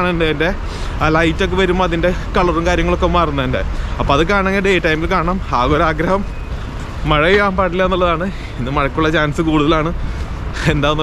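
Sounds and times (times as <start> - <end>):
man talking: 0.0 - 6.3, 6.9 - 11.0
street traffic rumble: 0.0 - 11.0.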